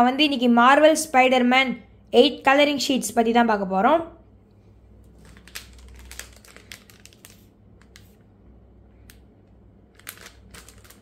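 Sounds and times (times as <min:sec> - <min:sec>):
plastic packaging crinkling: 0:05.0 - 0:08.4, 0:09.8 - 0:11.0.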